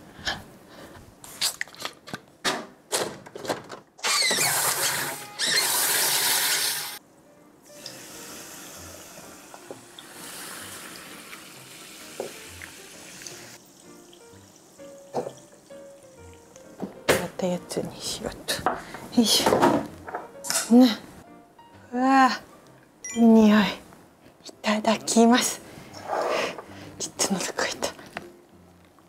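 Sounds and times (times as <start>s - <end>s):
liquid pouring over ice: 10.0s - 16.5s.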